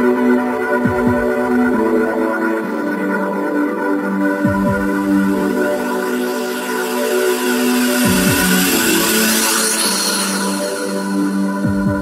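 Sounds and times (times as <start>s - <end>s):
held synth chords: 0.0s - 12.0s.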